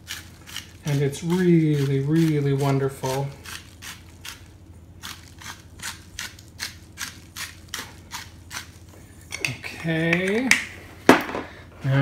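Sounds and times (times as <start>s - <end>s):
spice container scratchy strokes: 0.0s - 4.4s.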